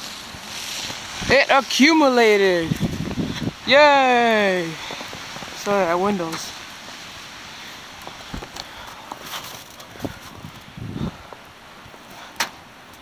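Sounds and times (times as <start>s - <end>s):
outdoor hiss: 0.0s - 13.0s.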